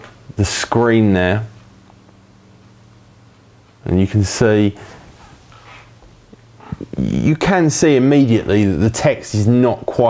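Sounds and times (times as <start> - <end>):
faint low hum: 0.0 - 10.0
man talking: 0.3 - 1.6, 3.8 - 4.9, 6.8 - 10.0.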